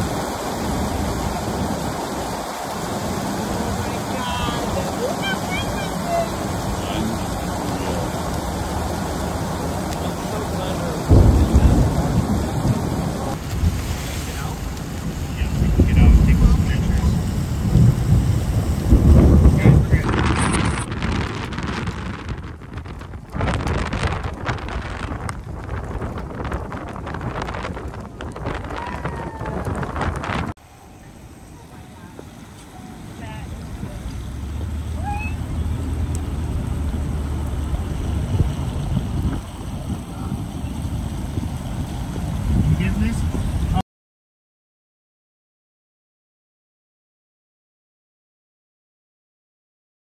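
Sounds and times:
deep thunder rumbles: 0.0 - 30.6, 31.4 - 43.8
rain: 0.0 - 43.8
wind gusts: 0.0 - 43.8.

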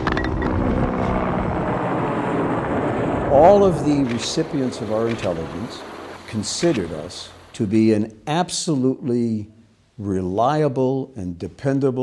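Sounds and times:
steady engine drone: 0.0 - 7.5.

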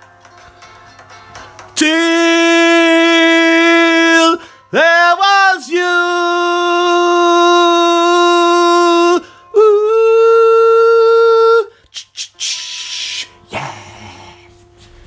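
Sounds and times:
man singing long notes: 1.8 - 12.7.

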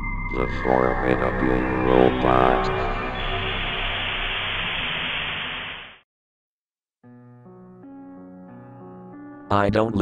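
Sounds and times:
radio static hiss: 1.2 - 6.0.

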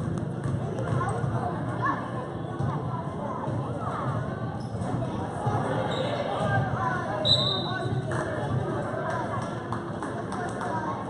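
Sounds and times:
basketball bouncing: 0.0 - 1.1
crowd chatter: 0.0 - 11.0.

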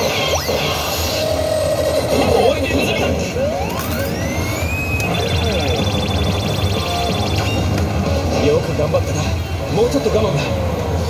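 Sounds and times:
low hum of game hall: 0.0 - 11.0
slot machine sound effect: 1.9 - 7.9.

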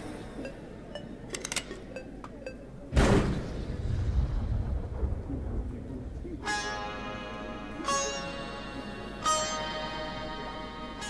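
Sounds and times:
thunder rumble: 3.0 - 7.2.

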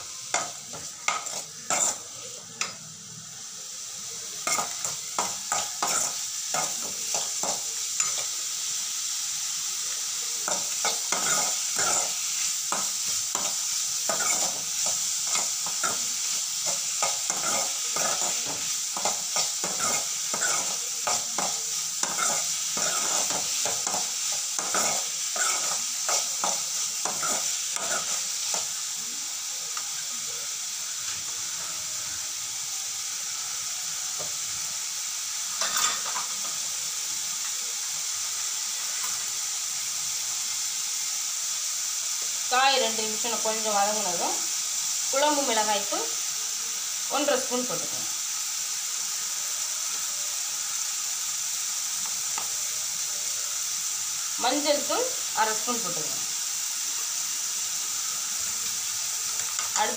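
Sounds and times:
vegetables sizzling in oil: 0.0 - 59.9.

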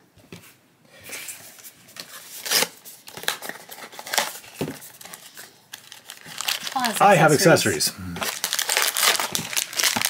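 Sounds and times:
foil bag crinkling: 3.2 - 7.5, 8.2 - 10.0
person speaking: 6.7 - 8.3.

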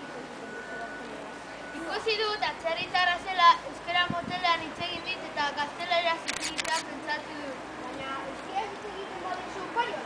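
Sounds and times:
children speaking: 0.3 - 10.0
sharp clicks: 6.2 - 6.9.

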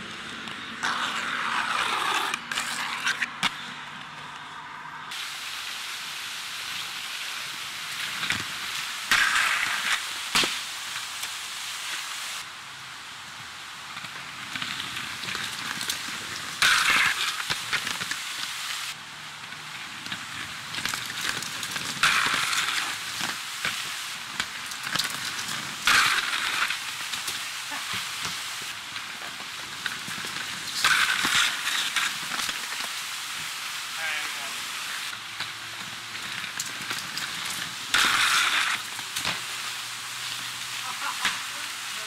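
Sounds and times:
skates clacking on ground: 0.0 - 4.6, 7.9 - 11.4, 13.9 - 18.6, 19.4 - 33.6, 34.5 - 41.7
skate wheels rolling on concrete: 0.0 - 42.0.

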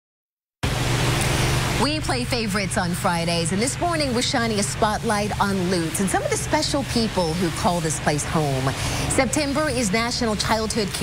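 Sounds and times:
steady rushing noise: 0.6 - 11.0
woman speaking: 1.8 - 11.0.

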